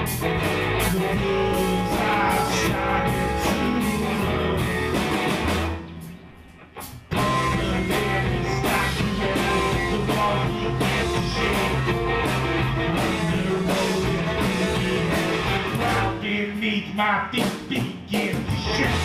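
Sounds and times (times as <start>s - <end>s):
electric guitar: 0.0s - 16.4s, 18.4s - 19.0s
live band playing: 0.0s - 16.6s, 17.3s - 19.0s.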